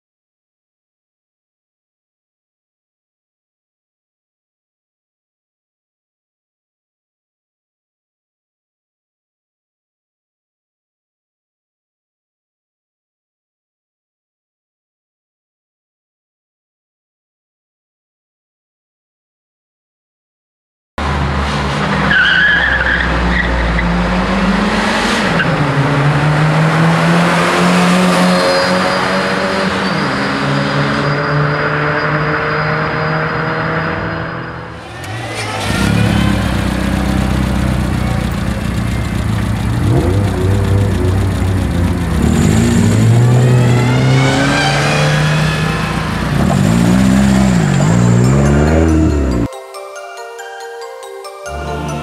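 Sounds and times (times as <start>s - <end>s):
car engines revving: 21.0s - 49.5s
tyres squealing: 34.7s - 49.5s.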